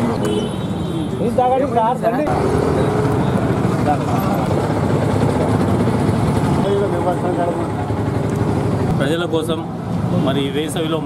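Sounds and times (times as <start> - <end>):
street traffic rumble: 0.0 - 11.0
men chattering: 0.9 - 11.0.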